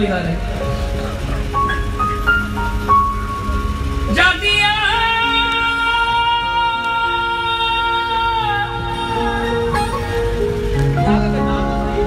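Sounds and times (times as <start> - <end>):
instrumental melody: 0.0 - 12.0
low drone: 0.0 - 12.0.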